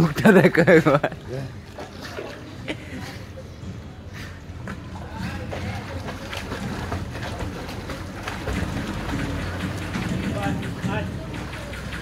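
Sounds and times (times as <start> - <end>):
pool water splashing: 0.0 - 12.0.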